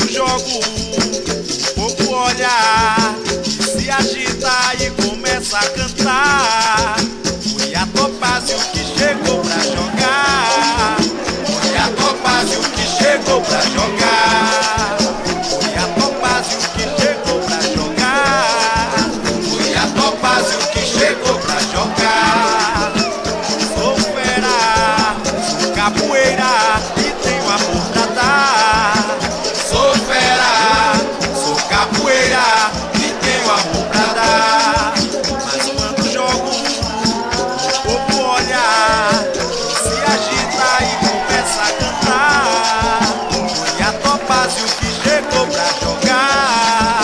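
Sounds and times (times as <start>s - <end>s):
person singing: 0.0s - 47.0s
shaker rattling: 0.0s - 47.0s.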